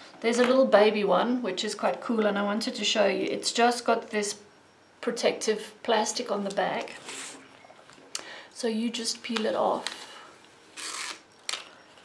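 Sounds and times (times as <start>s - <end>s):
plastic film crinkling: 10.7s - 11.7s.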